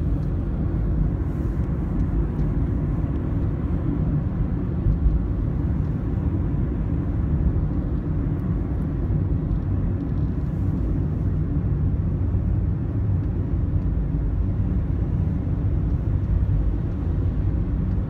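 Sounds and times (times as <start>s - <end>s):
car cabin road rumble: 0.0s - 18.0s.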